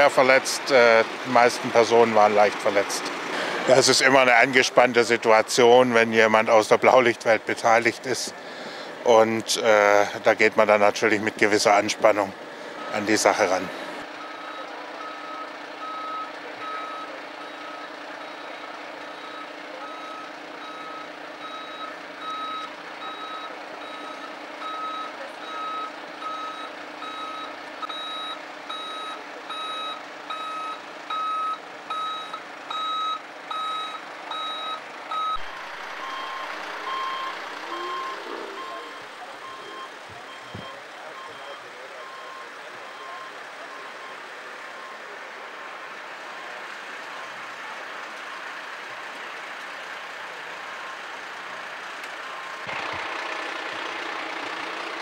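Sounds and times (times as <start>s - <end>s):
idling vehicles hum: 0.0s - 55.0s
reversing alarm beeping: 14.2s - 45.2s, 52.2s - 52.9s
low-pitched beeping: 19.2s - 41.6s.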